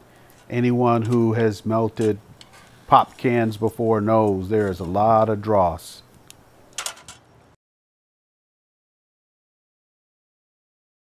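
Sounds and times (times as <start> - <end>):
metal tongs scraping crucible: 0.1 - 5.6, 6.2 - 7.3.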